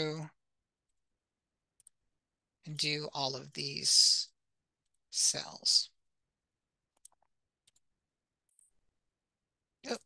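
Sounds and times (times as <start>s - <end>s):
computer mouse clicks: 1.8s - 2.0s, 6.9s - 8.8s.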